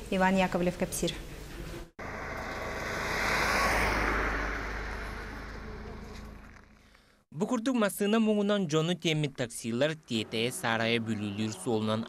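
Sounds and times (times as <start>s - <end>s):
car driving past on snow: 2.0s - 7.0s.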